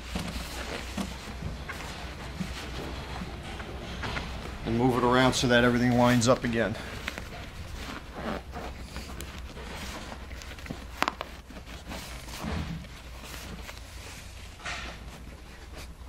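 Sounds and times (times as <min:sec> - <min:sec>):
fabric rustling and rubbing: 0:00.0 - 0:16.0
low steady hum: 0:00.0 - 0:16.0.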